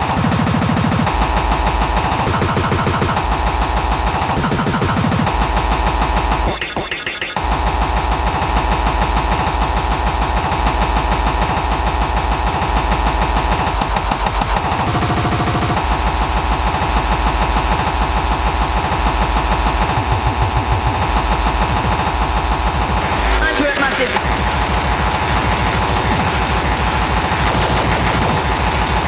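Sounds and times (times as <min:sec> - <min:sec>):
heavy bass: 0:00.0 - 0:06.7, 0:07.4 - 0:29.0
fast chopped drum breaks: 0:00.0 - 0:29.0
mid-pitched drone: 0:07.4 - 0:29.0.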